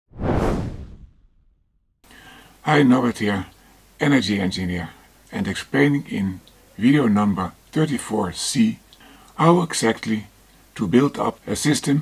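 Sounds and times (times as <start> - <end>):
whoosh: 0.1 - 1.9.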